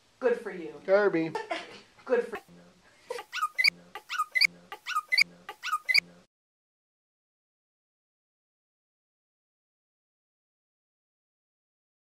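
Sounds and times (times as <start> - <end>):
small dog whining: 3.2 - 6.1.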